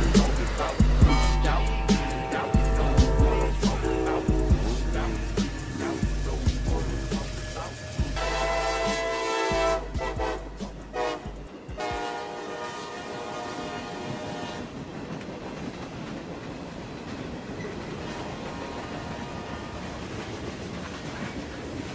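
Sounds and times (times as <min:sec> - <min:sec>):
locomotive air horn: 0:00.0 - 0:14.8, 0:18.8 - 0:19.9
train wheels on rails: 0:00.0 - 0:21.9.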